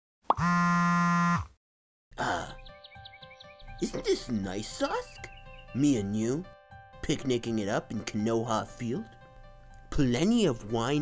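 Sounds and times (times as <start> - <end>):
light background music: 2.2 - 11.0.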